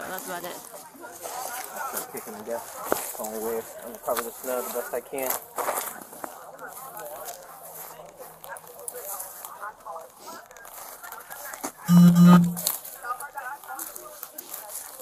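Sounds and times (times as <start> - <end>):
faint murmuring voices: 0.0 - 15.0
short low buzzing tone: 11.9 - 12.7.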